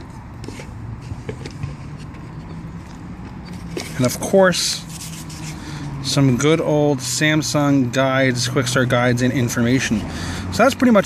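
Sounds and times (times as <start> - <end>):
hand handling cardboard box: 0.0 - 2.5, 3.2 - 5.6.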